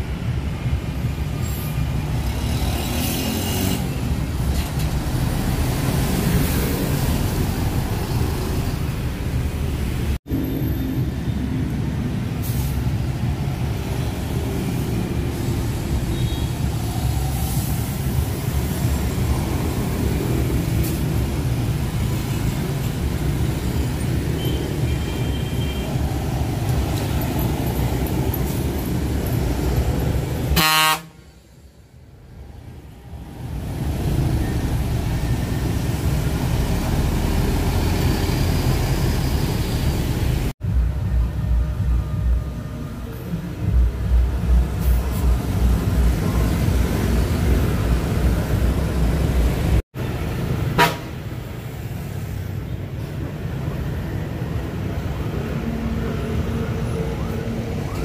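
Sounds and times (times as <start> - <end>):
bus diesel engines rumbling: 0.0 - 58.0
motorbike traffic: 0.0 - 58.0
short horn toot: 30.6 - 31.2.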